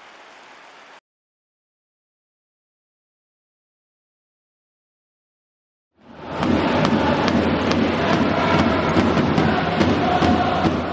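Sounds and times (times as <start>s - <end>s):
stadium crowd cheering and chanting: 6.0s - 10.9s.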